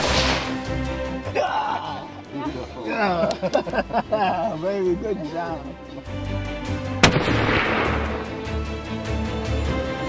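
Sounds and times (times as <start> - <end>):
rifle shot with echo: 7.0 - 8.6.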